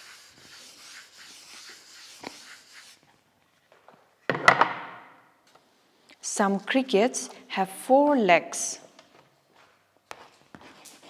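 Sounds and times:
duster rubbing on chalkboard: 0.0s - 3.0s.

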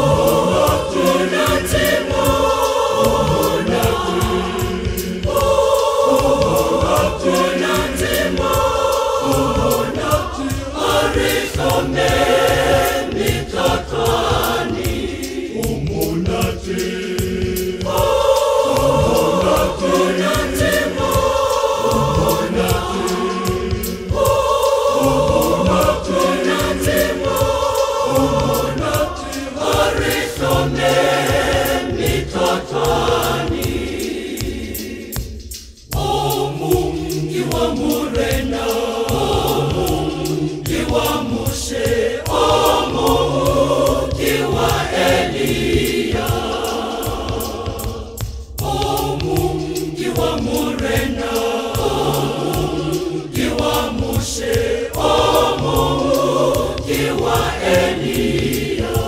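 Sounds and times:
choir singing a gospel hymn: 0.0s - 59.0s.

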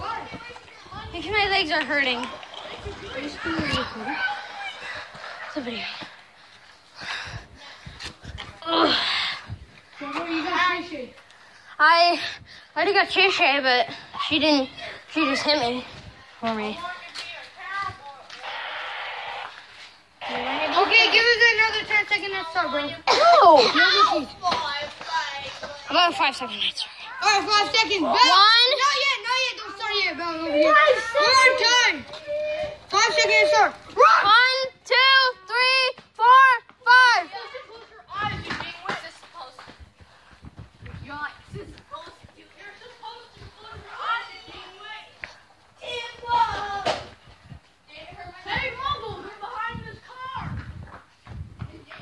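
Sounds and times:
children's voices: 0.0s - 39.7s, 40.8s - 50.8s
child's voice: 10.0s - 11.2s, 20.3s - 39.2s, 45.8s - 47.0s, 47.9s - 50.6s.

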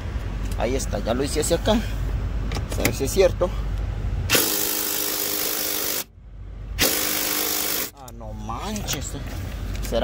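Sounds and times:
cordless drill motor whir: 4.3s - 6.1s, 6.8s - 7.9s.

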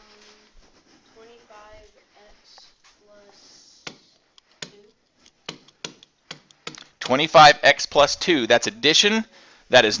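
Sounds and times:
stylus tapping on tablet: 3.8s - 7.2s.

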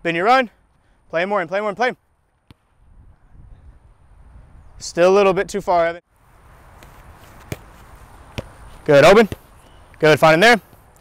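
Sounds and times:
football kicked on grass: 2.4s - 2.7s, 6.7s - 9.9s.

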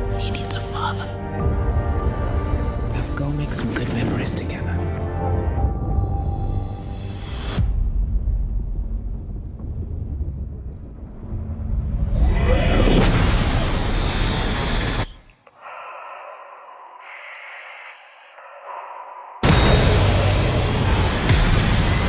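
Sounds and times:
trailer music: 0.0s - 15.2s, 19.4s - 22.0s
low rumble: 1.2s - 15.1s.

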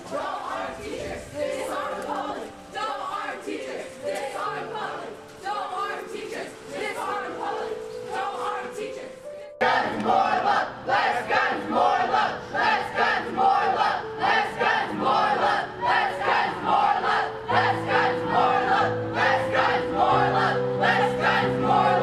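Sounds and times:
crowd chanting: 0.0s - 22.0s.

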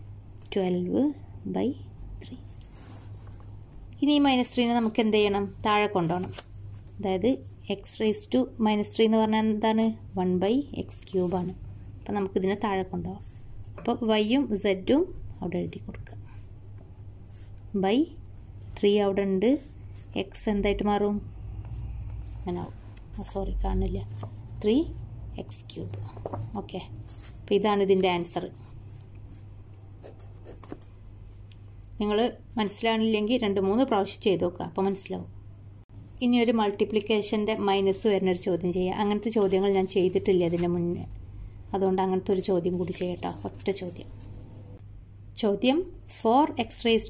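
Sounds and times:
woman speaking: 0.4s - 2.5s, 4.0s - 6.4s, 7.0s - 16.2s, 17.7s - 18.2s, 18.8s - 21.3s, 22.4s - 28.7s, 32.0s - 35.3s, 36.2s - 44.2s, 45.4s - 47.0s
paper sheet rustling: 26.0s - 29.4s
pen scratching on paper: 27.0s - 31.0s.

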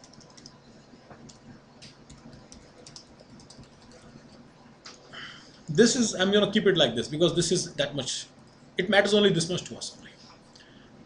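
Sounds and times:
typing on keyboard: 0.0s - 0.6s, 1.2s - 4.2s.

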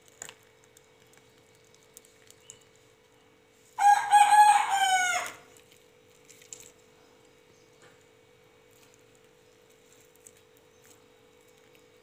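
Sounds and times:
faint steady hum: 0.0s - 12.0s
rooster crowing: 3.8s - 5.5s.

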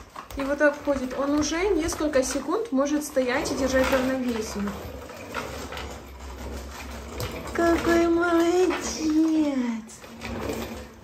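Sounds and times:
baby walker rolling on wood: 0.0s - 11.0s.

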